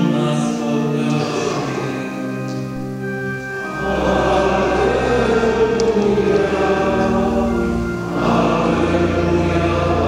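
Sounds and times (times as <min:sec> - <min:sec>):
men singing in a church: 0:00.0 - 0:10.0
sustained low organ notes: 0:00.0 - 0:10.0.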